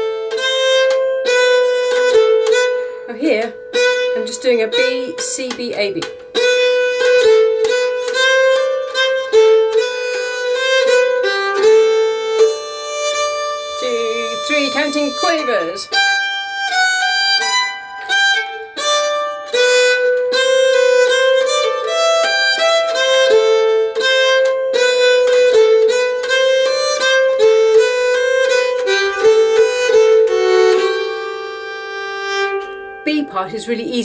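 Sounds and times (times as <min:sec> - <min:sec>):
keyed fiddle playing slow melody: 0:00.0 - 0:34.0.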